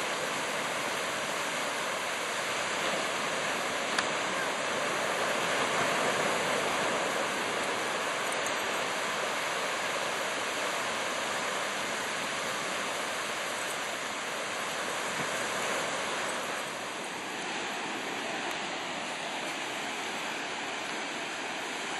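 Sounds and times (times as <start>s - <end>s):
ocean surf on beach: 0.0s - 21.9s.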